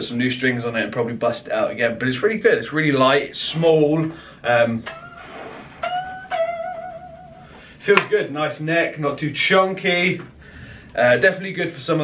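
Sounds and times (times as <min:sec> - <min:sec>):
electric guitar notes picked: 0:04.8 - 0:07.8.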